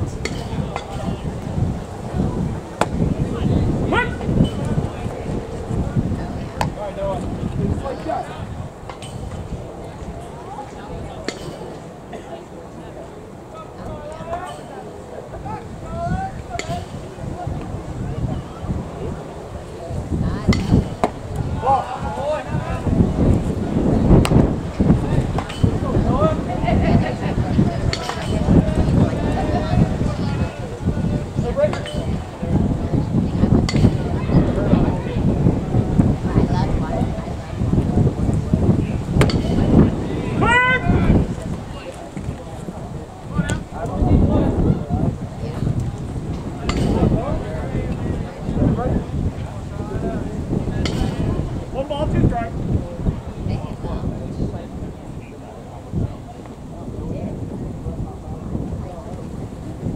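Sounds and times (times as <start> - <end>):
distant voices: 0.0 - 59.9
wind rumbling on microphone: 0.0 - 59.9.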